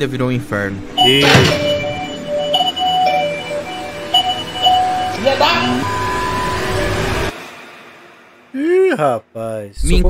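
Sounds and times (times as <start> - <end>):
electronic doorbell chime: 1.0 - 7.3.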